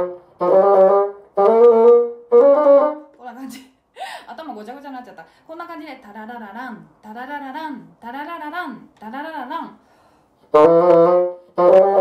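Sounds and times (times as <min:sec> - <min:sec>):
bassoon playing quick notes: 0:00.0 - 0:03.1, 0:10.5 - 0:12.0.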